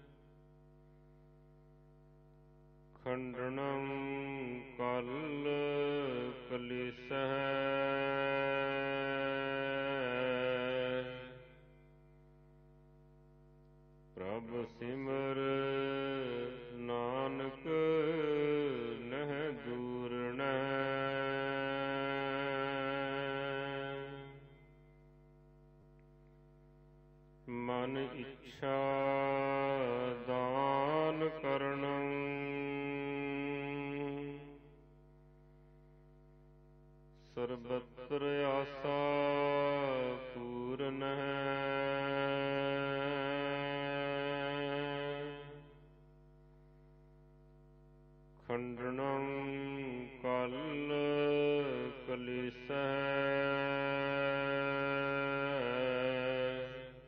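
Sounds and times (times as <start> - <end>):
person chanting: 3.0 - 11.8, 14.1 - 25.0, 27.4 - 34.8, 37.2 - 46.0, 48.4 - 57.0.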